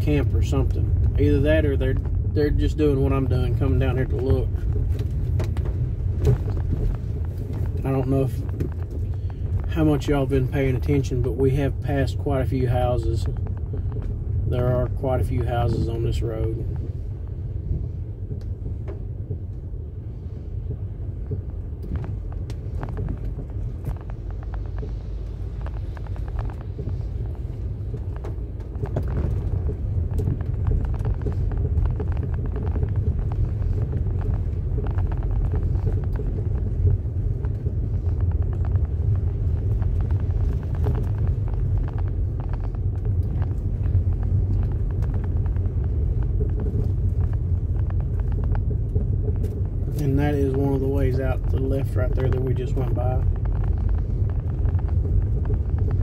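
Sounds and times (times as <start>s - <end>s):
road rumble inside vehicle: 0.0s - 56.0s
small clicks and ticks: 0.0s - 56.0s.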